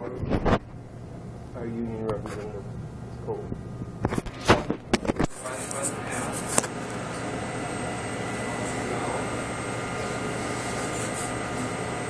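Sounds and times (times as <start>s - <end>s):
machine hum with high whines: 0.0s - 12.0s.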